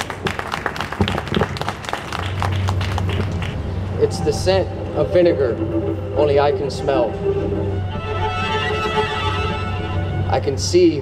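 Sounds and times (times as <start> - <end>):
audience applause: 0.0 - 3.8.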